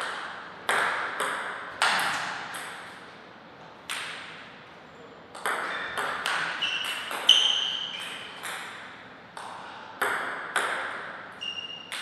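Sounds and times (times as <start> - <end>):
table tennis ball bouncing: 0.0 - 2.9, 3.9 - 4.4, 5.3 - 12.0.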